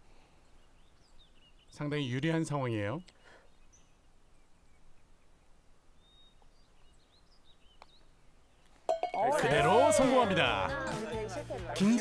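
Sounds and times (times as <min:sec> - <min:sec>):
faint bird chirps: 0:00.0 - 0:09.0.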